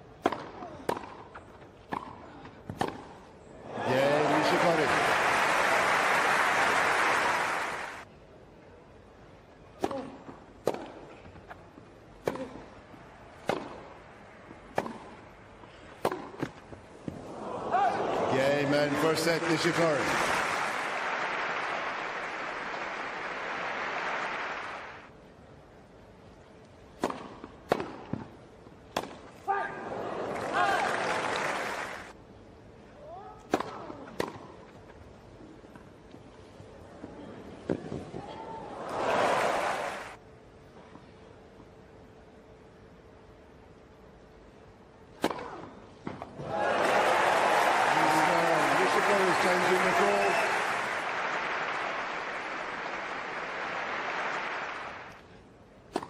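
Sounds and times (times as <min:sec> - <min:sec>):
tennis ball hit by racquets: 0:00.2 - 0:03.2, 0:09.8 - 0:11.1, 0:12.2 - 0:12.7, 0:13.4 - 0:13.9, 0:14.7 - 0:15.2, 0:16.0 - 0:17.2, 0:27.0 - 0:29.3, 0:33.5 - 0:34.6, 0:45.2 - 0:46.3
crowd cheering and applauding: 0:03.7 - 0:08.0, 0:18.0 - 0:25.1, 0:30.1 - 0:32.1, 0:38.8 - 0:40.2, 0:46.4 - 0:55.2
tennis ball struck by rackets: 0:13.4 - 0:13.9, 0:14.7 - 0:15.2, 0:16.0 - 0:16.6, 0:27.0 - 0:28.3, 0:28.9 - 0:29.3, 0:33.5 - 0:34.5.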